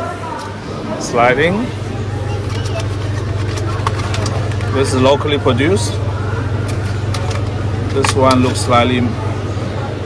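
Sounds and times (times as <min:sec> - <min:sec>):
refrigerated cabinet humming: 0:00.0 - 0:10.0.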